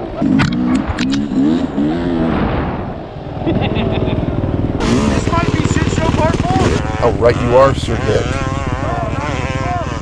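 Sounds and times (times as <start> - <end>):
dirt bike engine revving: 0.0 - 10.0.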